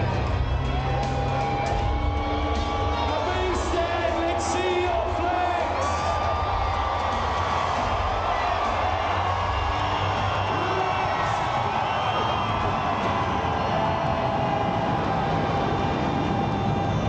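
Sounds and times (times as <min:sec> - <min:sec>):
aircraft engine rumble and whine: 0:10.3 - 0:17.0.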